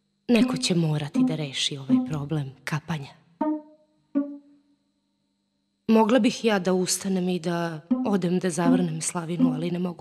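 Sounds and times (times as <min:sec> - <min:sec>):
plucked string note: 0:01.2 - 0:02.3, 0:03.4 - 0:04.6, 0:07.8 - 0:09.8.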